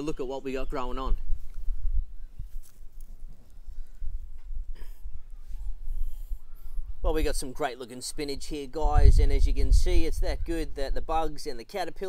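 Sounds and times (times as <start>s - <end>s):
microphone handling rumble: 8.8s - 11.0s.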